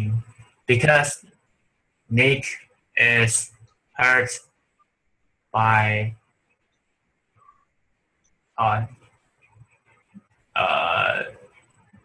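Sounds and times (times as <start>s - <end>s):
man saying uhh: 2.1s - 4.4s, 10.6s - 11.4s.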